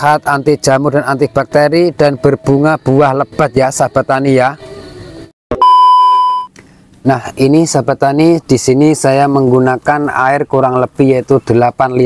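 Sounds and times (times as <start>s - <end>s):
electronic beep: 5.5s - 6.5s.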